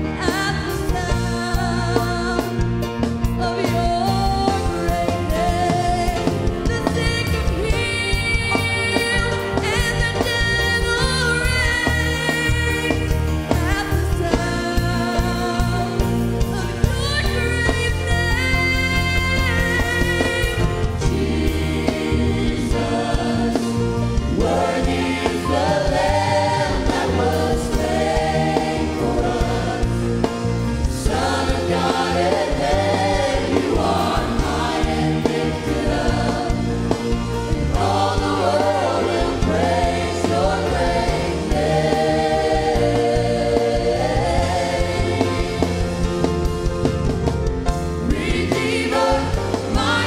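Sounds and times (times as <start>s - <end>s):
church band playing: 0.0s - 50.0s
gospel choir singing: 0.0s - 50.0s.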